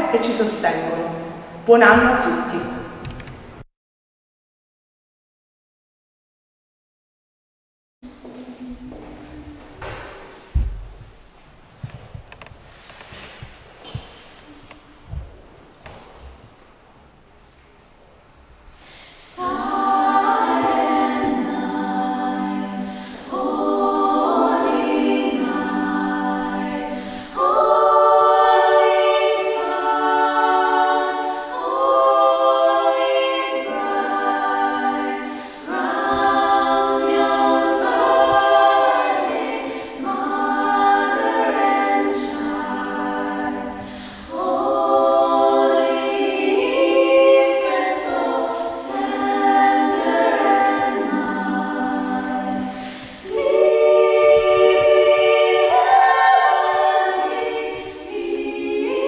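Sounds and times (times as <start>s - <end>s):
female vocal ensemble singing carol: 0.0s - 3.1s, 18.8s - 59.0s.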